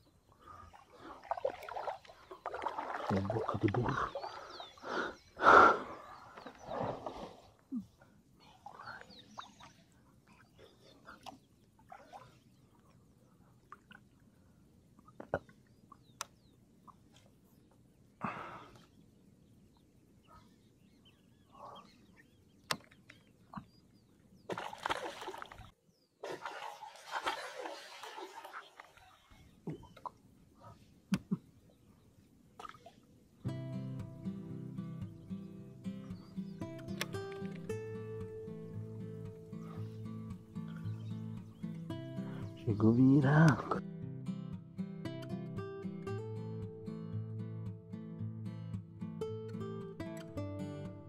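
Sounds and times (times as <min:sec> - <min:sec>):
paddle splashing through water: 0:00.5 - 0:04.7, 0:24.5 - 0:30.2.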